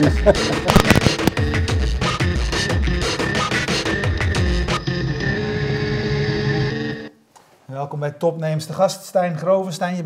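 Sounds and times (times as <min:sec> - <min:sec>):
electronic theme music: 0:00.0 - 0:07.1.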